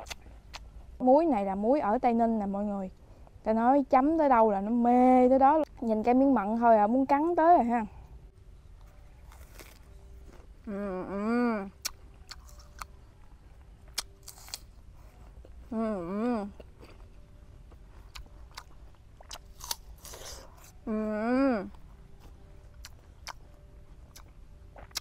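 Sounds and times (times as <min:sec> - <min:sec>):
apple crunching and chewing: 0:00.0 - 0:00.7, 0:08.8 - 0:10.5, 0:11.7 - 0:13.0, 0:13.8 - 0:15.6, 0:16.6 - 0:20.8, 0:21.7 - 0:25.0
woman humming with mouth full: 0:10.7 - 0:11.7, 0:15.7 - 0:16.5, 0:20.8 - 0:21.7.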